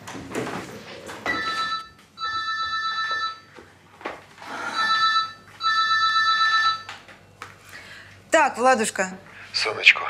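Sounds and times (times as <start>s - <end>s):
mobile phone ringtone: 1.3s - 3.6s, 4.7s - 6.9s.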